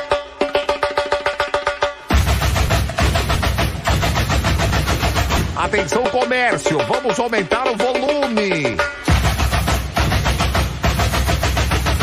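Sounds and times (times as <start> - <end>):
samba drums playing fast rhythm: 0.0 - 12.0
heavy low drum: 2.1 - 12.0.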